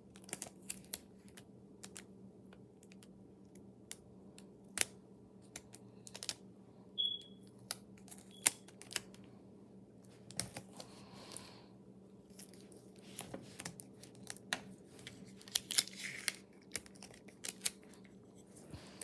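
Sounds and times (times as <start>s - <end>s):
tape and paper crinkling: 12.2s - 19.0s.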